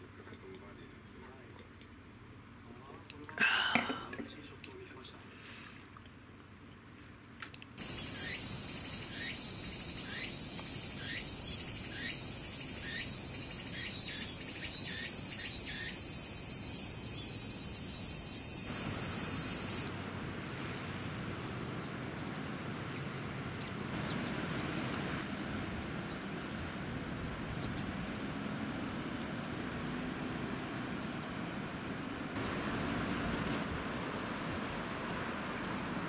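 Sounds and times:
cicadas buzzing: 0:07.8 - 0:19.9
short falling chirps: 0:07.8 - 0:19.9.

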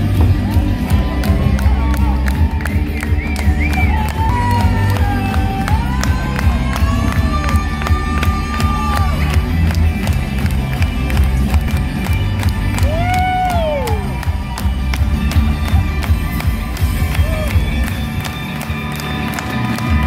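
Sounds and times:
live rock music: 0:00.0 - 0:20.0.

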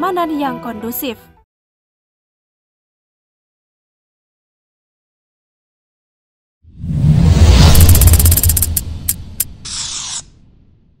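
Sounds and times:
short hiss: 0:07.6 - 0:10.4
sharp clicks: 0:07.7 - 0:09.5.

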